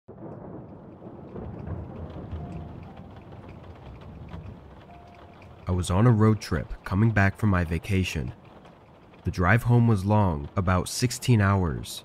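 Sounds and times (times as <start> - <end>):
rolling thunder rumble: 0.1 - 12.0
steady rain: 0.1 - 12.0.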